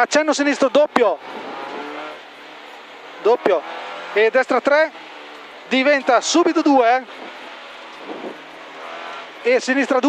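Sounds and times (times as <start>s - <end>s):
rally car engine from inside cabin: 0.0s - 10.0s.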